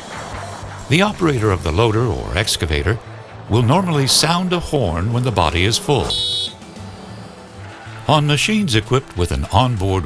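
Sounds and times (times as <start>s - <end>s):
soft background music: 0.0s - 10.0s
high-pitched horn blast: 5.8s - 6.8s.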